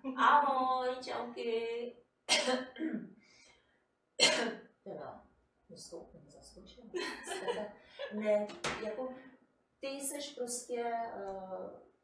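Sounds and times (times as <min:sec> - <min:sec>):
woman coughing: 0:02.3 - 0:03.1, 0:04.2 - 0:04.7
throat clearing: 0:02.5 - 0:03.2.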